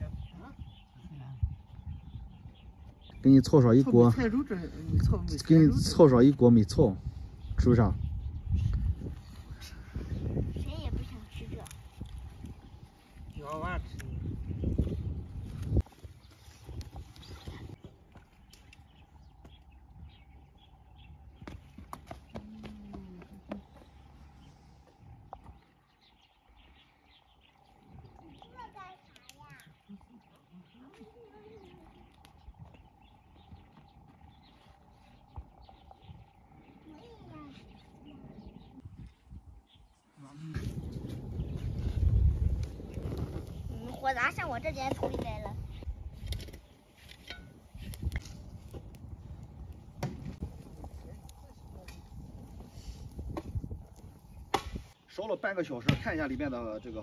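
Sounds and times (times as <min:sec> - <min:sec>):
wind on microphone: 0:00.0 - 0:55.0
twigs snapping and clicking: 0:18.1 - 0:19.7, 0:29.0 - 0:30.0, 0:32.1 - 0:32.5, 0:46.1 - 0:52.2.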